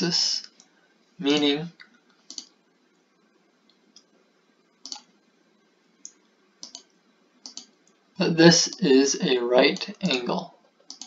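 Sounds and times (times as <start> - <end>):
faint computer mouse clicks: 1.8 - 2.6, 4.8 - 5.1, 6.0 - 8.0.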